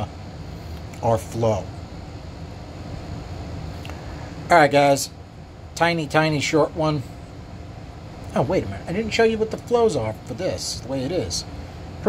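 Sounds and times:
machinery humming and hissing: 0:00.0 - 0:12.0.

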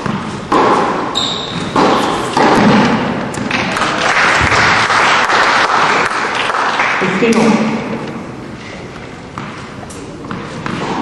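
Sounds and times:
tennis ball thuds: 0:00.0 - 0:03.7, 0:09.3 - 0:11.0
spectators applauding: 0:03.6 - 0:07.2.

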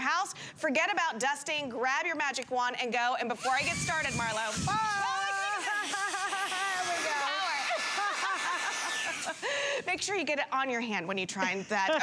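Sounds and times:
people talking: 0:00.0 - 0:07.8, 0:09.8 - 0:12.0
handheld vacuum whine: 0:03.3 - 0:09.8.

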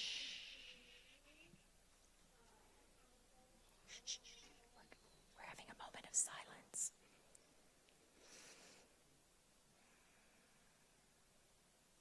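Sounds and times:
person whispering: 0:00.0 - 0:01.6, 0:03.9 - 0:07.0.

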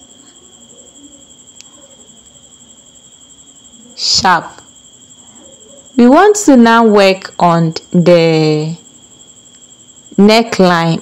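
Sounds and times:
insect trilling: 0:00.0 - 0:11.0.

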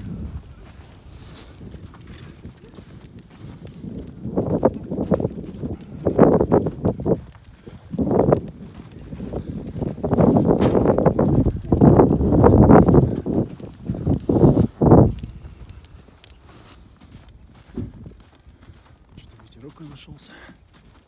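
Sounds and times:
footsteps crunching on snow: 0:00.0 - 0:21.0.

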